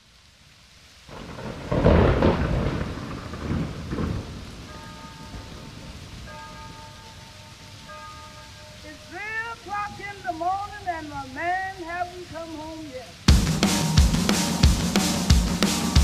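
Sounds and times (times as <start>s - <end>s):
rain hiss: 0.0s - 16.0s
thunderclap rolling: 1.1s - 7.1s
held musical tones: 4.7s - 16.0s.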